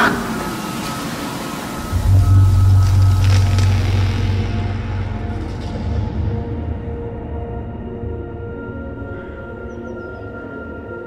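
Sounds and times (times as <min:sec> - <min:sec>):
loud deep drone: 0:00.0 - 0:10.0.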